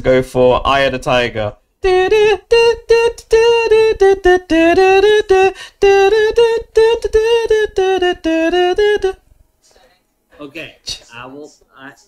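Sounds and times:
man humming a tune: 1.8 - 9.2.

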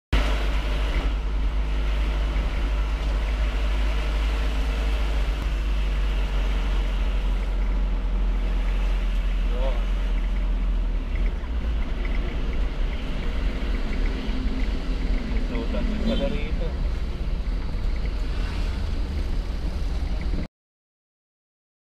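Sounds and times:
wind rumble on microphone: 16.8 - 20.5.

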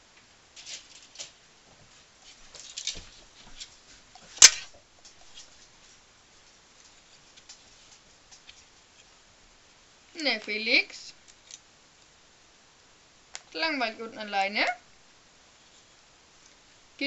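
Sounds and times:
clothes rustling: 0.5 - 9.2.

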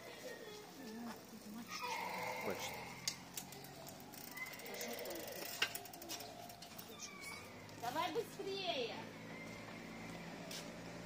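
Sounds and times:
street ambience: 0.0 - 11.0.

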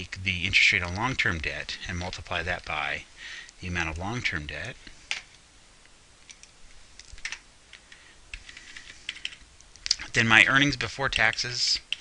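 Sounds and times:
computer keyboard keystrokes: 6.3 - 7.4, 8.3 - 10.0, 11.2 - 12.0.

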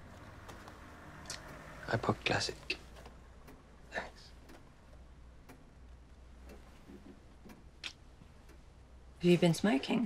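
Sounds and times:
clock ticking: 1.3 - 9.2.

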